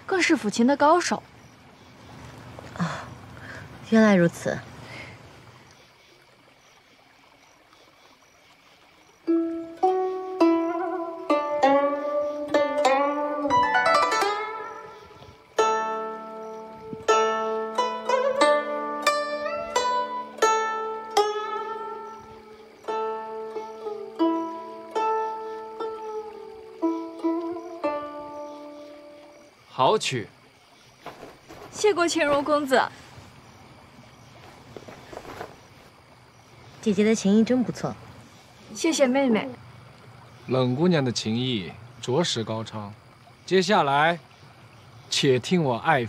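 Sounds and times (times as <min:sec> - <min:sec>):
plucked zither melody: 0:09.3 - 0:29.3.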